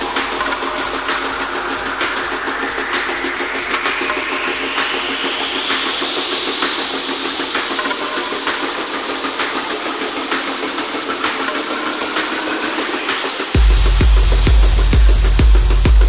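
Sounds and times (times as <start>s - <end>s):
kick drum and bass beat: 0.0s - 16.0s
rapid hi-hat ticks: 0.0s - 16.0s.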